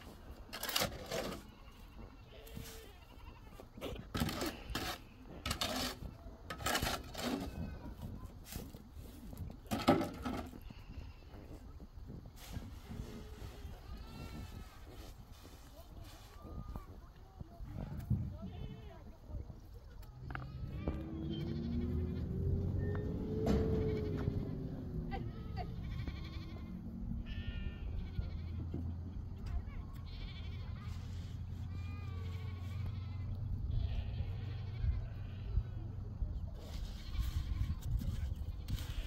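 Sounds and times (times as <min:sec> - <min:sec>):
sheep and goats bleating: 0:00.6 - 0:06.1, 0:09.6 - 0:11.6, 0:12.9 - 0:15.1, 0:18.4 - 0:19.2, 0:20.2 - 0:22.9, 0:23.7 - 0:35.8, 0:36.6 - 0:39.0.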